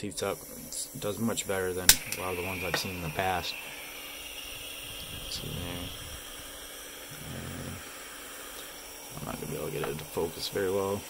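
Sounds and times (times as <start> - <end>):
soldering iron burner hissing: 0.0 - 11.0.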